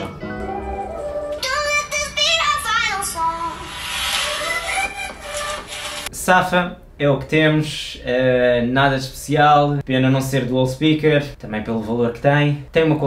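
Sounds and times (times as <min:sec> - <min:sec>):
song through phone loudspeaker: 0:00.0 - 0:06.1.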